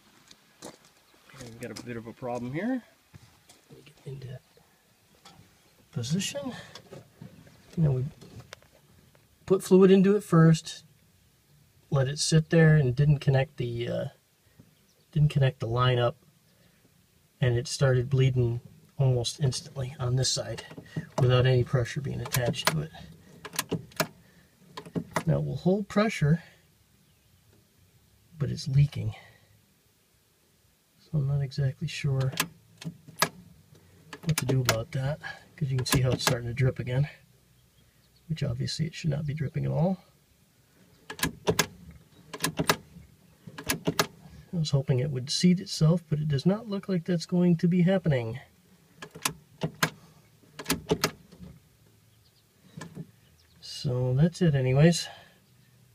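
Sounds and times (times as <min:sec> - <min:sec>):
brake pedal clicks and knocks: 0:20.5 - 0:25.4, 0:32.2 - 0:35.0, 0:35.6 - 0:36.6, 0:40.9 - 0:44.3, 0:48.9 - 0:51.6, 0:52.6 - 0:53.5.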